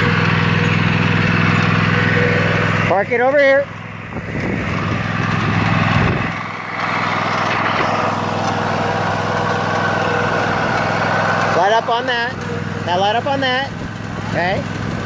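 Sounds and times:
riding mower engine running: 0.0 - 15.0.

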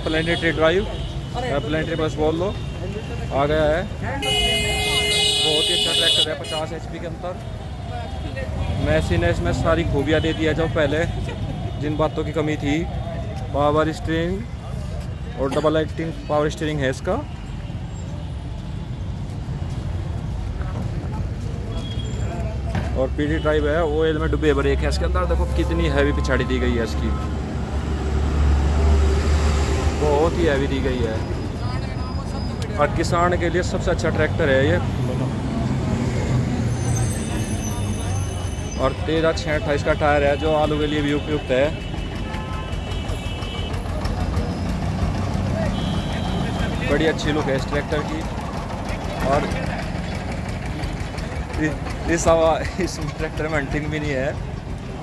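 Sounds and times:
vehicle engines rumbling: 0.0 - 55.0.

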